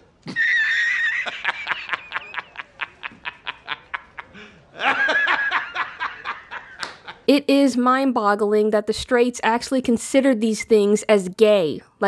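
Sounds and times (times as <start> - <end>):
man laughing hard: 0.2 - 7.3.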